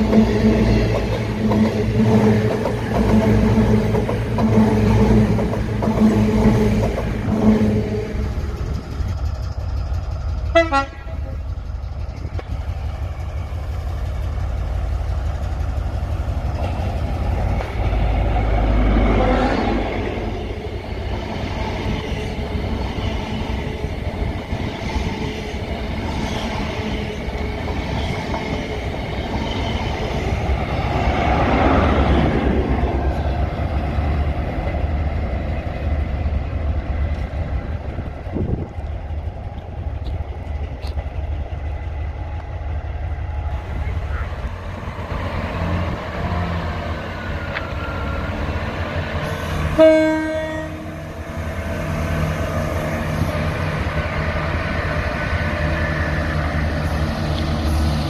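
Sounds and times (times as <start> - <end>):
diesel train engine drone: 0.0 - 58.0
diesel train rumble: 0.0 - 58.0.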